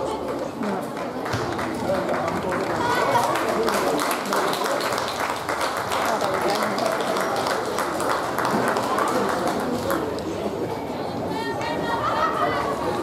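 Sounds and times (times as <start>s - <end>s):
chatter of many voices: 0.0s - 13.0s.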